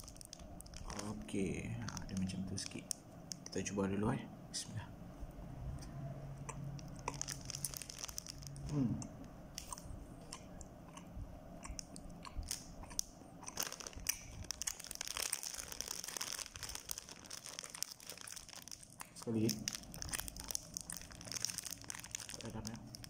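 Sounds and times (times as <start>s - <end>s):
plastic wrapper crinkling: 0.0s - 3.7s, 6.7s - 8.8s, 11.7s - 23.0s
wet mouth clicks: 6.5s - 7.2s, 9.0s - 14.3s
chewing bread bun: 6.5s - 11.0s, 11.6s - 23.0s.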